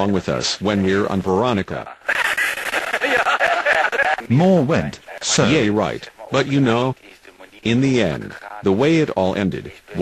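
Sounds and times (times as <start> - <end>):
audience laughing: 2.2 - 4.3.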